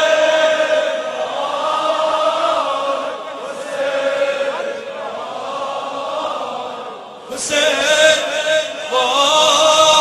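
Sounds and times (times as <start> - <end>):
men chanting in unison: 0.0 - 10.0.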